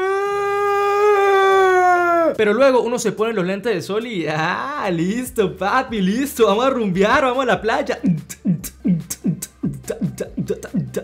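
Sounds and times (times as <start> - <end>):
man wailing: 0.0 - 2.4.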